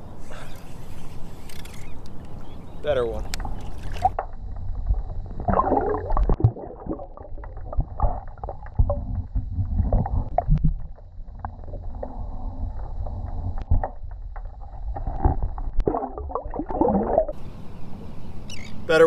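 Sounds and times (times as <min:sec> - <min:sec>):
muffled underwater rumble: 0:00.0 - 0:17.6.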